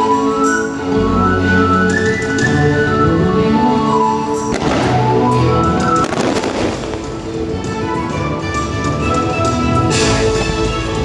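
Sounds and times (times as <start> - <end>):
show music: 0.0 - 11.0
fireworks bursting and crackling: 4.4 - 7.8.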